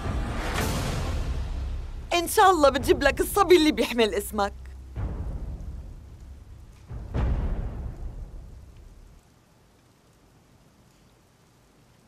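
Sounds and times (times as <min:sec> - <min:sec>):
deep boom stingers: 0:04.6 - 0:09.2.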